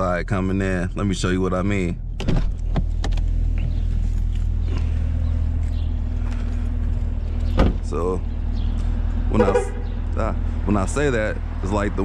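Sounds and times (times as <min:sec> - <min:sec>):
car engine idling: 0:00.0 - 0:12.0
car door shutting: 0:02.1 - 0:03.8, 0:07.5 - 0:07.9.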